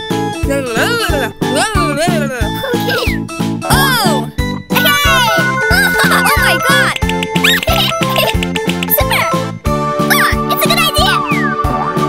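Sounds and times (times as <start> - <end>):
cartoon background music: 0.0 - 12.0
squeaky cartoon vocal sounds: 2.7 - 3.2, 4.8 - 9.4.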